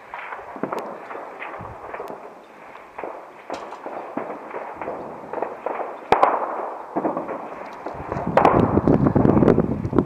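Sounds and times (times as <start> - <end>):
echoing gunshots: 0.0 - 8.9.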